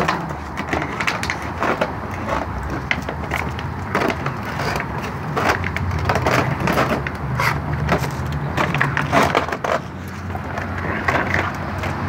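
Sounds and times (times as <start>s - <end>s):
dog crunching plastic jug: 0.0s - 12.0s.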